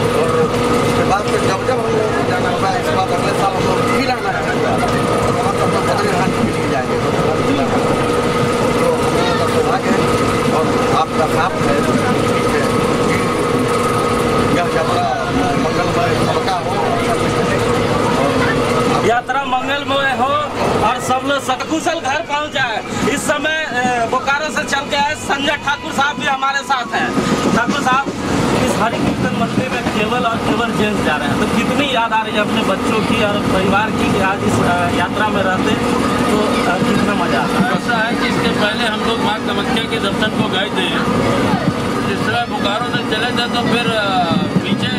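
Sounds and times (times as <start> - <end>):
constant hum: 0.0 - 44.9
people talking: 0.0 - 44.9
train coach rumble: 0.0 - 44.9.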